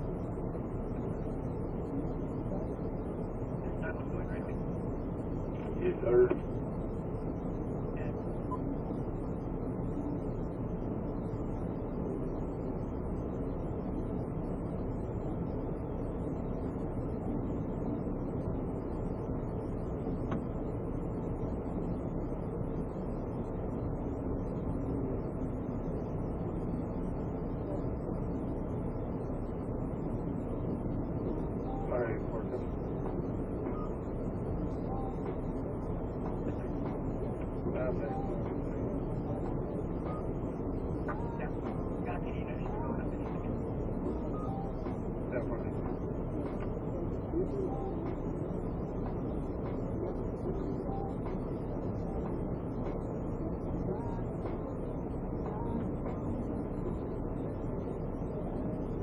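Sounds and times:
vehicle cabin rumble and hiss: 0.0s - 59.0s.

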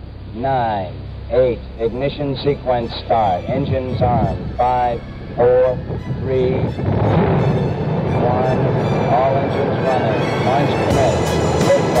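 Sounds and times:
rocket engines rumbling: 0.0s - 12.0s
music playing: 0.1s - 12.0s.

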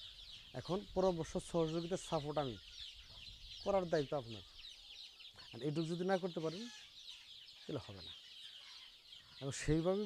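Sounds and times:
chickens cheeping and clucking: 0.0s - 10.0s.

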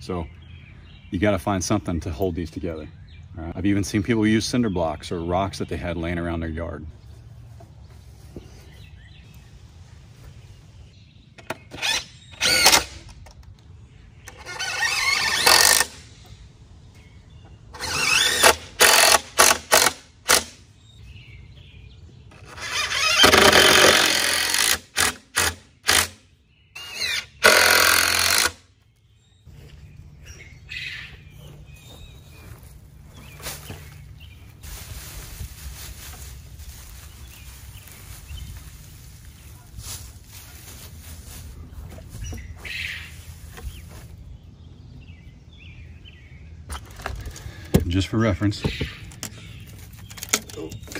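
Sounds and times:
cordless drill driving screws: 11.8s - 13.0s, 14.3s - 16.0s, 17.8s - 20.5s, 22.4s - 26.2s, 26.8s - 28.6s.

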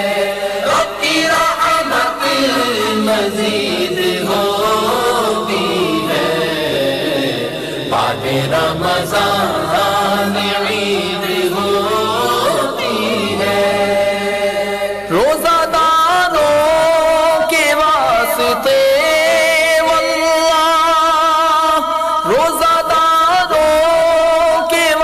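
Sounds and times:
person chanting: 0.0s - 25.0s.

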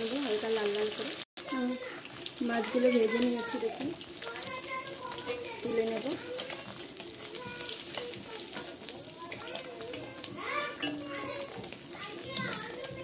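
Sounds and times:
fish frying in hot oil: 0.0s - 13.0s
metal spatula scraping wok: 4.9s - 12.0s.

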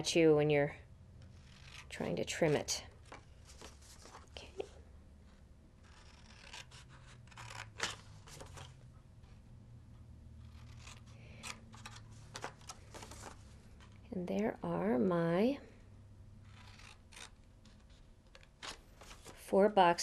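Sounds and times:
scissors snipping paper: 5.8s - 8.0s, 16.5s - 17.4s.

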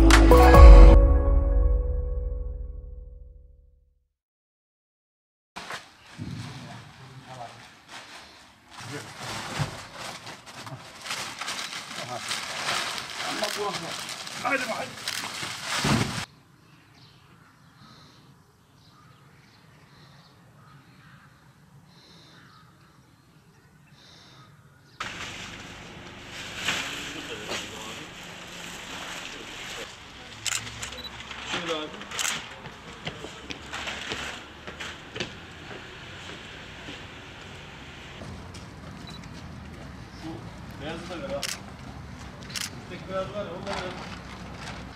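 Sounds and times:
plastic bags rustling and thudding: 5.6s - 16.3s, 25.0s - 30.1s, 31.2s - 37.0s, 43.6s - 44.9s
outdoor background noise: 5.6s - 44.9s
distant bird calls: 16.3s - 25.1s.

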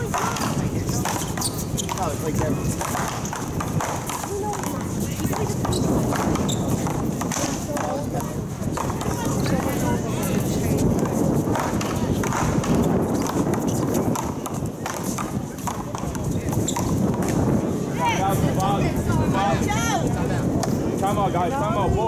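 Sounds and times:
ball struck with paddles: 0.0s - 10.0s, 10.8s - 17.5s.

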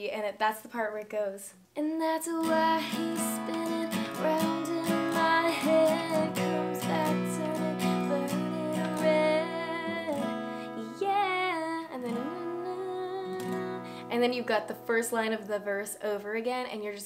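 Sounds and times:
woman singing: 1.8s - 17.0s
acoustic guitar strumming: 2.4s - 14.9s.

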